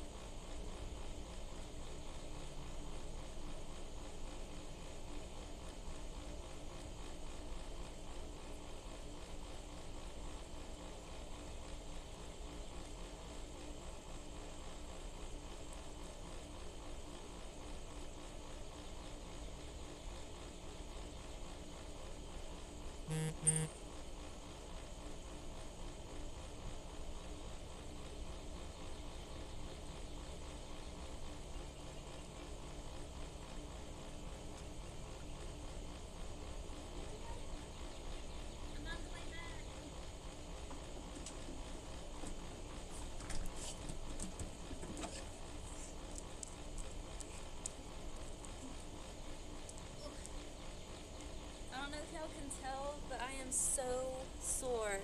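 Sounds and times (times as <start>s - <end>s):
faint even hum: 0.0s - 55.0s
short double tone: 23.1s - 23.8s.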